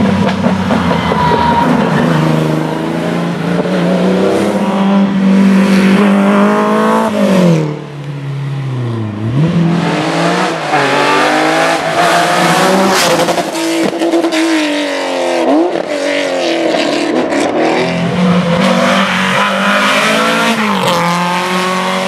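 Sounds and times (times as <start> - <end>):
rally car engines at full throttle: 0.0 - 22.0.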